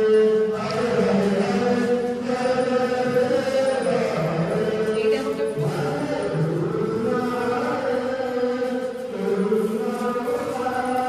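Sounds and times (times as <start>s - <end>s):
person chanting long sung notes: 0.0s - 11.0s.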